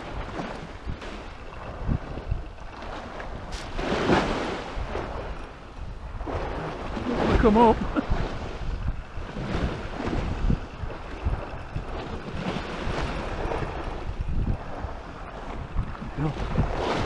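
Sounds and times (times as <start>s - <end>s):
sea waves against sea wall: 0.0s - 17.0s
wind buffeting microphone: 0.0s - 17.0s.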